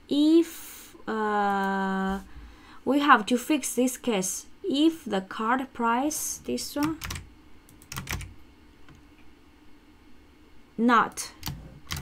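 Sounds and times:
typing on computer keyboard: 6.8 - 8.3, 11.4 - 12.0.

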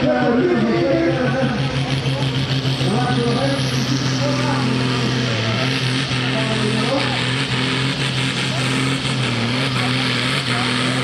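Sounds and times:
tractor diesel engine under load: 0.0 - 11.0.

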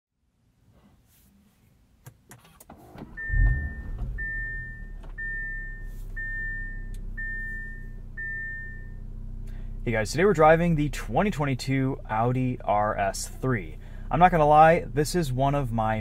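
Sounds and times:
car engine starting and idling: 2.4 - 16.0
dashboard warning chime beeps: 3.0 - 9.0.

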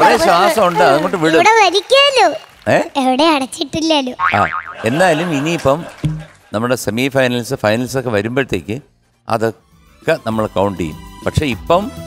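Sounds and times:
girl talking into a microphone: 1.4 - 2.4, 3.0 - 4.2.

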